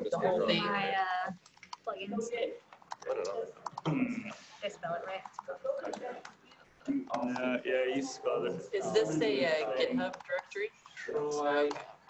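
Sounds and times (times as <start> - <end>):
person talking: 0.0 - 6.3, 6.9 - 12.0
computer keyboard typing: 1.4 - 1.9, 2.7 - 3.9.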